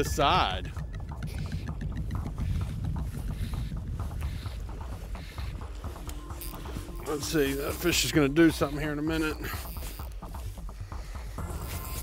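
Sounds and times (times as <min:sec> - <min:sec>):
wind rumble: 0:00.0 - 0:11.5
fly reel clicking: 0:03.2 - 0:12.0.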